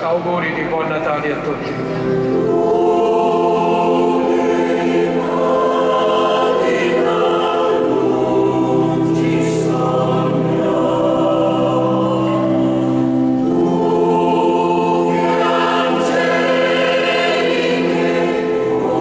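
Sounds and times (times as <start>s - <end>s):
mixed choir singing: 2.0s - 19.0s.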